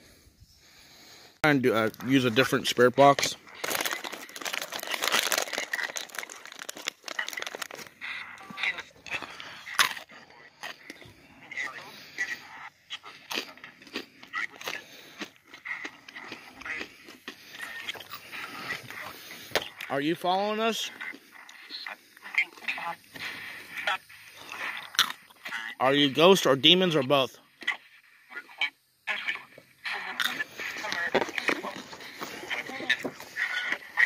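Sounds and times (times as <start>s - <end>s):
radio voice fragments: 1.4s - 34.0s.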